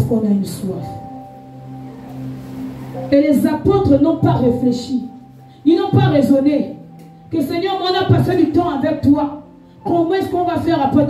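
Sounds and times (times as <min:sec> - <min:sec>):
keyboard chord held: 0:00.0 - 0:10.8.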